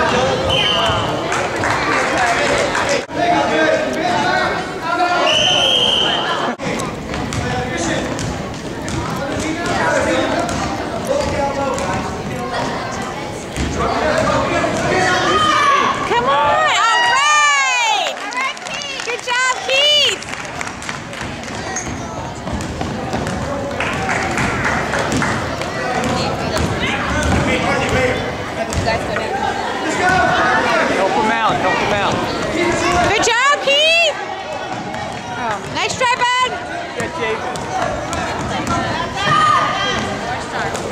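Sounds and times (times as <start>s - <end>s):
referee whistle blast: 0.5s - 1.0s, 5.2s - 6.4s
basketball bouncing on wooden court: 7.1s - 9.8s, 10.4s - 12.1s, 21.6s - 25.3s, 26.0s - 28.0s, 28.7s - 29.0s, 37.0s - 40.1s
basketball bouncing on hardwood: 21.8s - 23.5s, 28.7s - 28.9s.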